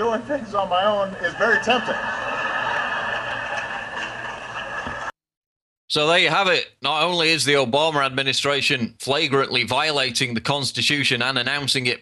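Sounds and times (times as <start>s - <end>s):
crowd applauding and cheering: 1.3s - 5.1s.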